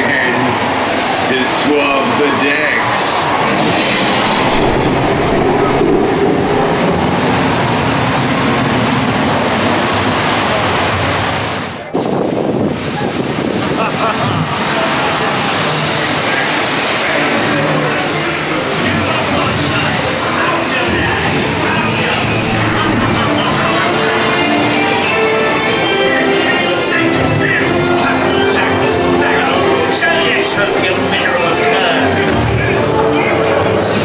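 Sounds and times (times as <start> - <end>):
indistinct voices: 0.0 - 11.1, 14.2 - 34.0
water rushing around boat: 0.0 - 34.0.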